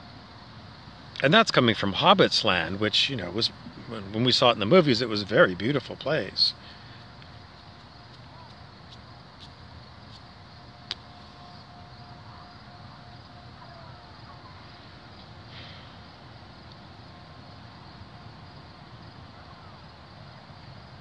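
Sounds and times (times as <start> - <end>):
faint hum-like tone: 0.0 - 21.0.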